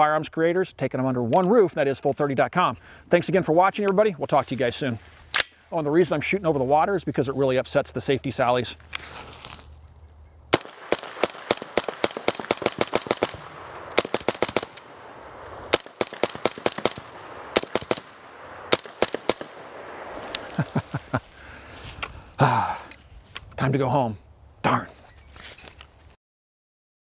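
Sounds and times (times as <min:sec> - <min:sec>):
suppressed rifle shots: 0:10.5 - 0:20.6.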